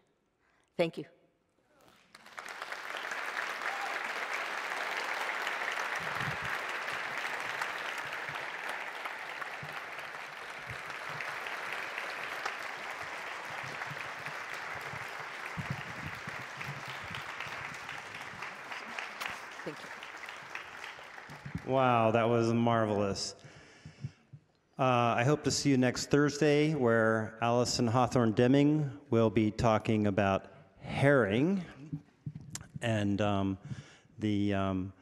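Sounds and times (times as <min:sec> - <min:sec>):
audience applauding: 0:02.0 - 0:22.4.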